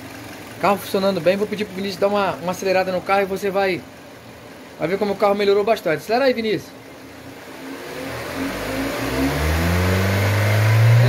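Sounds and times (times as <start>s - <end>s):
car engine revving: 6.8s - 11.0s.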